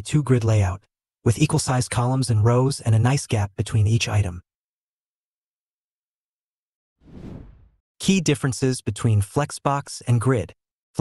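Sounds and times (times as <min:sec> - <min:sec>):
whoosh sound effect: 0:07.0 - 0:07.8.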